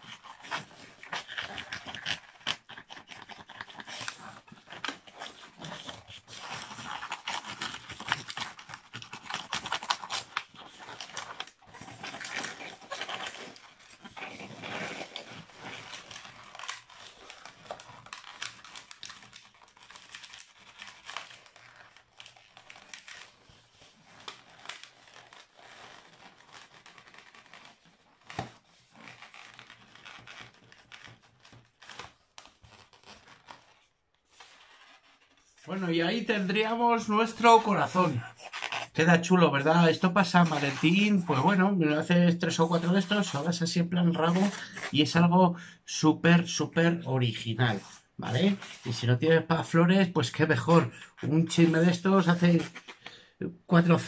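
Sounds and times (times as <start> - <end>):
balloon squeaking and rubbing: 0.0 - 54.0.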